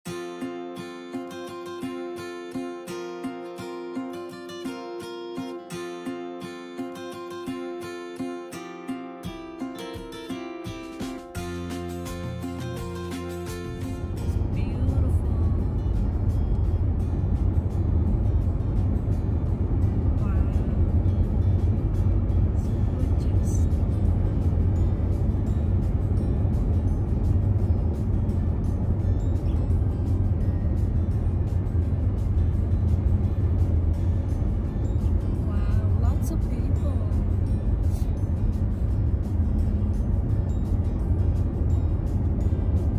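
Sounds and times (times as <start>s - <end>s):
car cabin road rumble: 13.5s - 42.9s.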